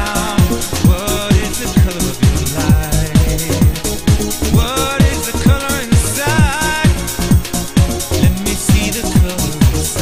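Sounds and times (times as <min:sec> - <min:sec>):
four-on-the-floor kick drum: 0:00.0 - 0:10.0.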